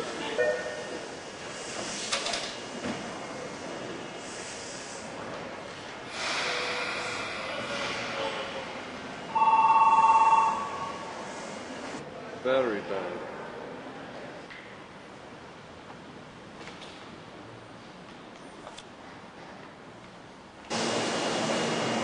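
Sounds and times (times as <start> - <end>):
station and train noise: 0.0 - 22.0
electric departure bell trilling: 9.3 - 11.1.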